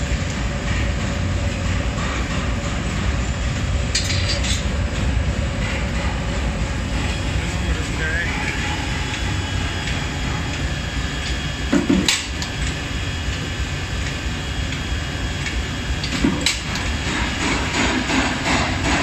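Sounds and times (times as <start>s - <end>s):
forge furnace rumble: 0.0s - 19.0s
forging machinery running: 0.0s - 19.0s.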